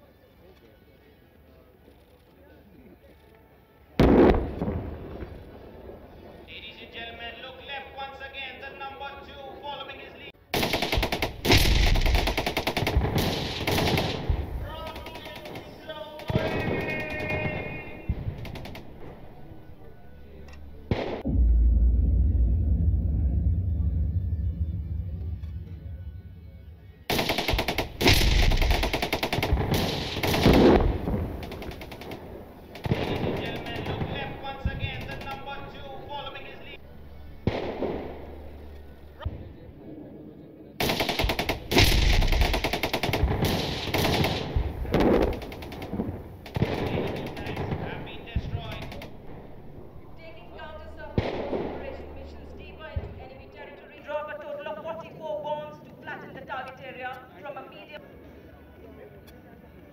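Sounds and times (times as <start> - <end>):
voices: 0.0 - 22.0, 23.0 - 59.9
rapid gunfire cracks: 10.5 - 19.1, 27.1 - 36.5, 40.8 - 49.6, 51.2 - 52.0
sharp blast: 10.6 - 15.6, 20.7 - 36.8, 40.8 - 53.3
loud low rumble: 17.9 - 27.1.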